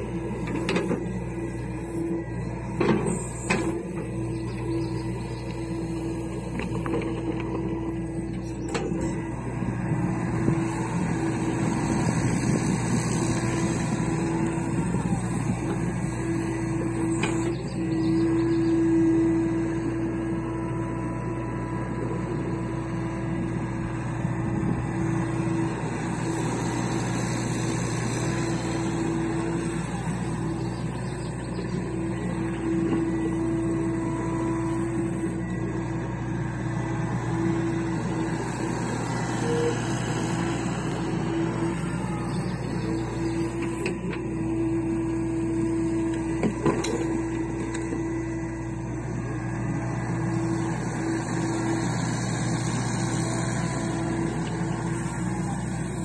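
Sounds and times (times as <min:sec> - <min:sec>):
excavator diesel engine running: 0:00.0 - 0:56.0
excavator digging soil: 0:00.0 - 0:56.0.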